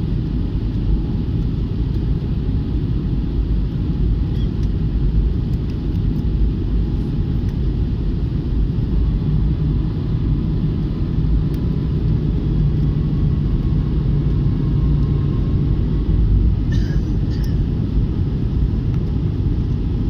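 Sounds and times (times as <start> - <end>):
jet engine and airflow roar: 0.0 - 20.0
low hum: 0.0 - 20.0.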